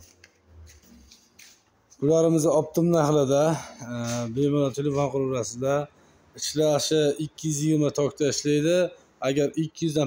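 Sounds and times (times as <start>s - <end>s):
man talking: 2.0s - 10.0s.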